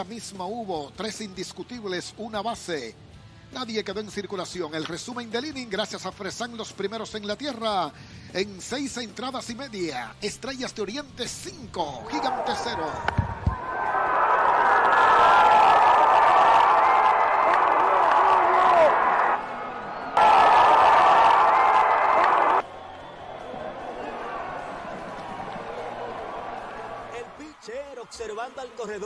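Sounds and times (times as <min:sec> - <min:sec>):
stadium crowd cheering: 0:12.0 - 0:29.0.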